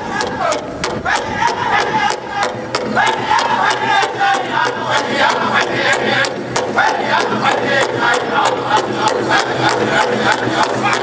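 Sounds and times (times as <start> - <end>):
high-pitched group singing: 0.0 - 11.0
large drum fast steady beat: 0.0 - 11.0.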